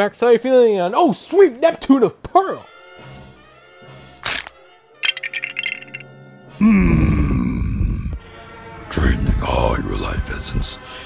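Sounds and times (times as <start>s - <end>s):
sharp crack: 4.2s - 4.6s.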